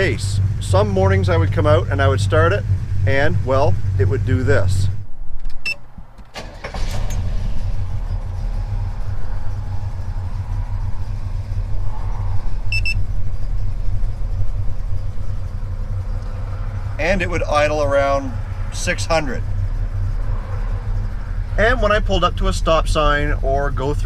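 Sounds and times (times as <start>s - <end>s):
car engine idling unevenly: 0.0s - 5.2s, 5.8s - 24.0s.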